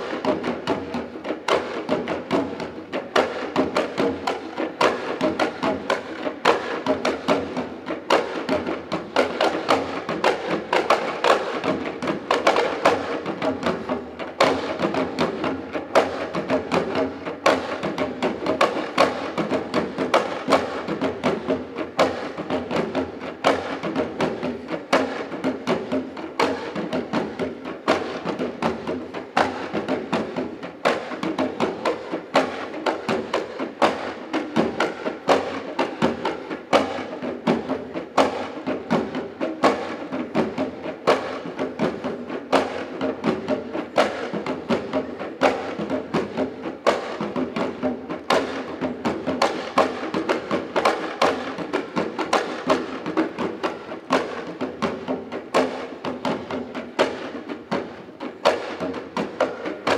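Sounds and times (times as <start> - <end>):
drums playing fast rhythm: 0.0 - 59.9.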